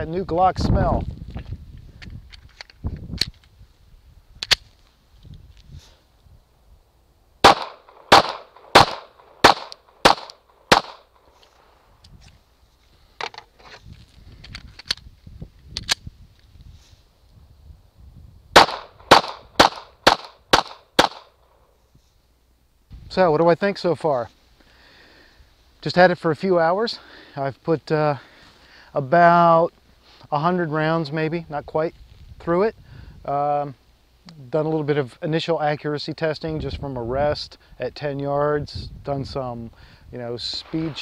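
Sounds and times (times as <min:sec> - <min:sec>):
faint single gunshots: 0:07.4 - 0:11.0
pistol shots: 0:07.4 - 0:11.2, 0:18.6 - 0:21.3, 0:40.6 - 0:41.0.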